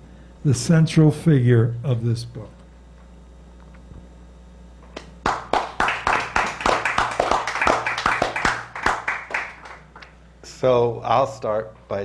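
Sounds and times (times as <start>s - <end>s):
audience applauding: 5.2s - 10.2s.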